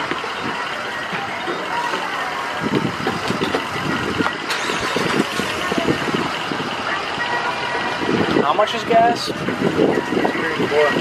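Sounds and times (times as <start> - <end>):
low rumbling: 0.0 - 11.0
traffic noise: 0.0 - 11.0
vehicle engine: 0.0 - 11.0.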